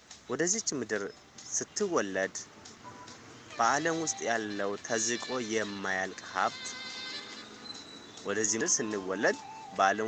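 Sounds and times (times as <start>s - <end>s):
soft background music: 0.0s - 10.0s
person reading aloud: 0.3s - 2.5s, 3.6s - 6.7s, 8.3s - 10.0s.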